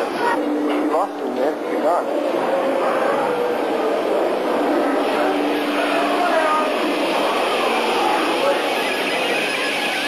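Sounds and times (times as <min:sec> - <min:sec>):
indistinct voices: 0:00.0 - 0:10.0
loud steady background noise: 0:00.0 - 0:10.0.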